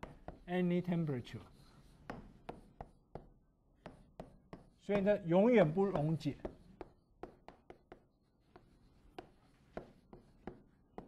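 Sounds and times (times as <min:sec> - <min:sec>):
chalk tapping on blackboard: 0:00.0 - 0:11.0
man speaking: 0:04.9 - 0:06.4.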